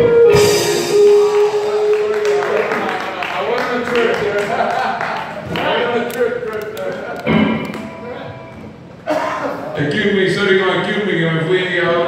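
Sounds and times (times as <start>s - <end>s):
amplified guitar chord ringing: 7.3s - 8.9s.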